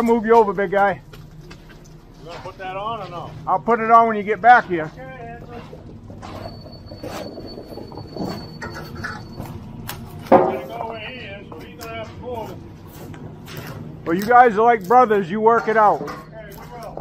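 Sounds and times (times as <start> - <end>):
diesel truck engine running: 0.0 - 15.6.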